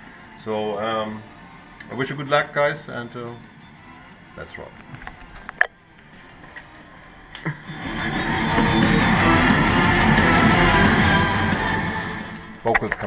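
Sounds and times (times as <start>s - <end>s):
instrumental rock music: 7.6s - 13.0s.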